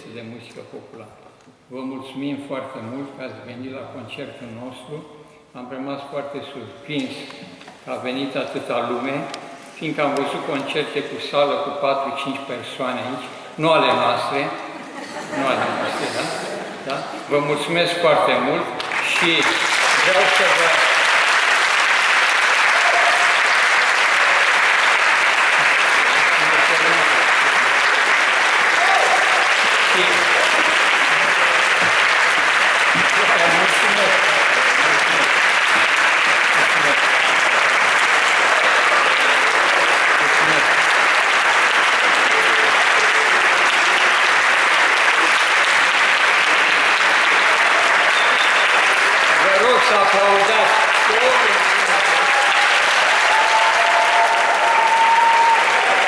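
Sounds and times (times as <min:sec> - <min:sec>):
audience applauding: 0:18.8 - 0:56.0.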